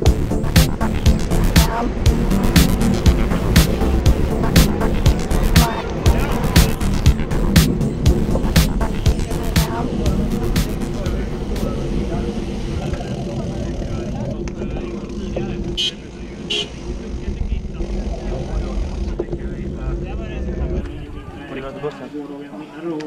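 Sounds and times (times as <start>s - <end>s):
music: 0.0s - 12.8s
bicycle road rumble: 0.0s - 22.8s
wind: 0.0s - 23.0s.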